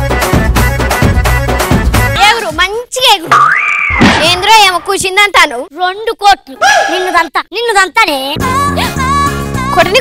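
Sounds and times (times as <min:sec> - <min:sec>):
child talking: 0:02.2 - 0:03.4, 0:04.2 - 0:08.4, 0:09.8 - 0:10.0.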